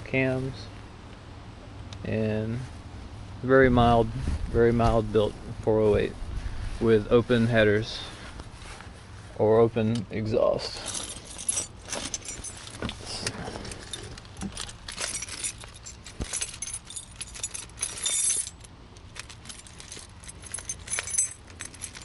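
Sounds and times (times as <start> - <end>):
keys jangling: 10.7 - 22.0.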